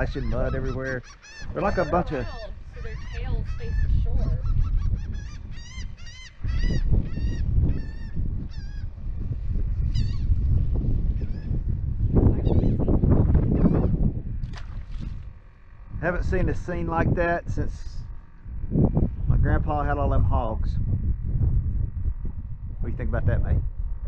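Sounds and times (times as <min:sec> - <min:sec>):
birds honking: 0:00.0 - 0:09.0, 0:09.8 - 0:10.4
wind on microphone: 0:00.0 - 0:24.0.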